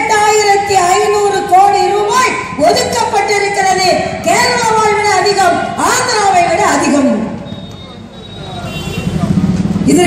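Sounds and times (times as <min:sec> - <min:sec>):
amplified speech: 0:00.0 - 0:07.4.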